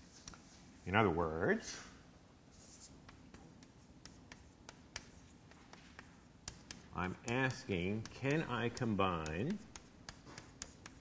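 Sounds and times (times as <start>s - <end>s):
chalk tapping: 0.1s - 0.6s, 2.5s - 11.0s
chalk scratching on blackboard: 2.5s - 11.0s.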